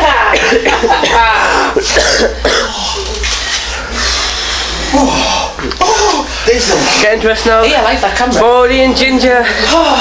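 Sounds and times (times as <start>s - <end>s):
man coughing: 0.2s - 3.0s.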